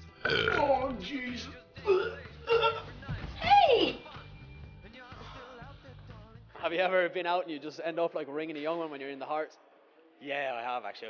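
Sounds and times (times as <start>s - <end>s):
background music: 0.0s - 11.0s
long loud belch: 0.2s - 0.8s, 1.9s - 2.8s.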